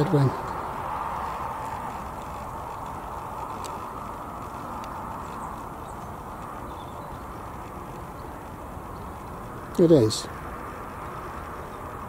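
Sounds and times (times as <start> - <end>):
road traffic hum: 0.0 - 12.0
faint high ticks: 1.4 - 9.5.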